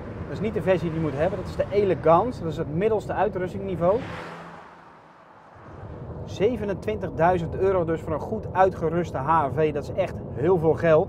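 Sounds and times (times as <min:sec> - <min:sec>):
car tyre and engine noise: 0:00.0 - 0:11.0.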